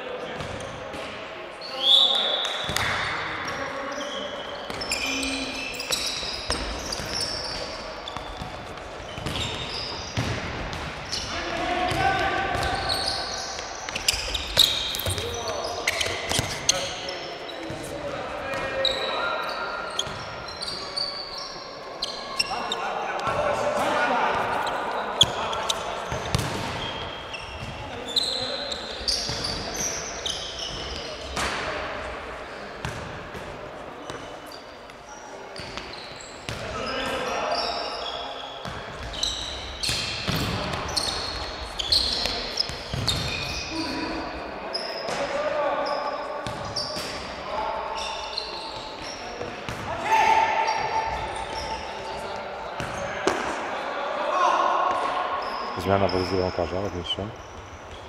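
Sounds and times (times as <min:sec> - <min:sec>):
shoe squeaks: 0:01.6 - 0:10.3, 0:11.0 - 0:11.4, 0:12.6 - 0:18.0, 0:18.6 - 0:31.4, 0:34.0 - 0:53.2, 0:55.3 - 0:58.0.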